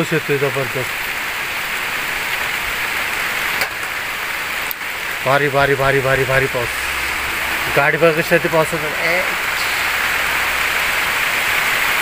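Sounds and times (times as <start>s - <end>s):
heavy rain pouring: 0.0s - 12.0s.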